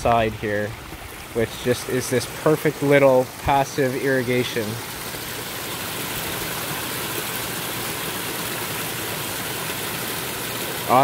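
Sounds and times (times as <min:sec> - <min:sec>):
water splashing over stones: 0:00.0 - 0:11.0.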